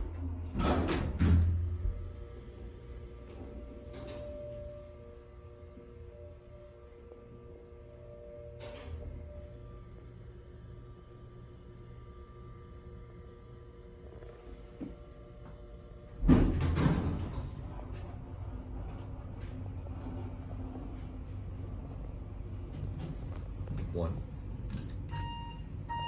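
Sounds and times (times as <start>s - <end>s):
elevator doors opening with clunk: 0.0s - 2.2s, 3.2s - 4.8s, 8.4s - 9.4s, 16.1s - 26.0s
elevator machine hum: 0.0s - 26.0s
click: 24.7s - 25.3s.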